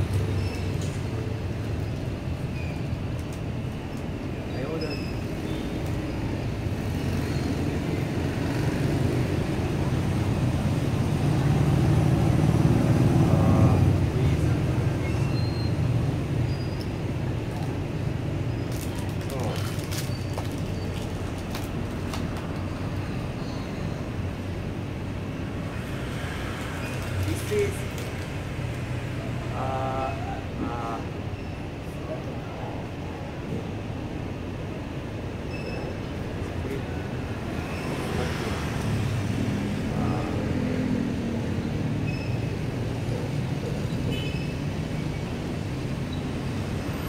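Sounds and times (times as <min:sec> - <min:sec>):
vehicle rumble: 0:00.0 - 0:47.0.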